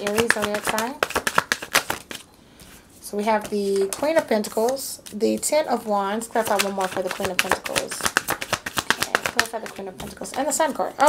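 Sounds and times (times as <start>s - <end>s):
cards being shuffled: 0.0s - 5.5s, 6.3s - 10.8s.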